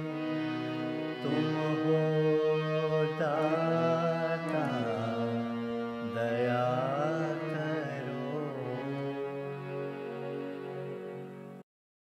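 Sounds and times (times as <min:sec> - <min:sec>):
man singing devotional song: 0:00.0 - 0:09.8.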